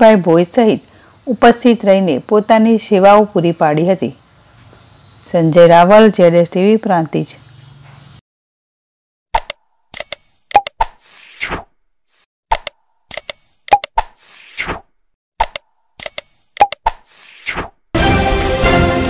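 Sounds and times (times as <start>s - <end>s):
sharp clicks: 9.4s - 11.0s, 12.5s - 14.2s, 15.4s - 17.1s.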